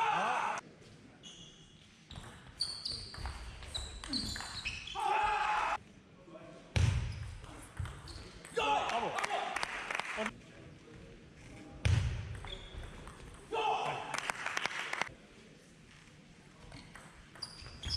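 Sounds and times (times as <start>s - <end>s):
people shouting: 0.0s - 0.6s, 5.0s - 5.8s, 13.5s - 14.1s.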